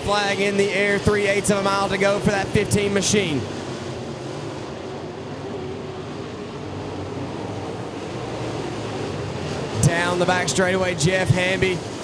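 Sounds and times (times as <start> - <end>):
race car engines drone: 0.0 - 12.0.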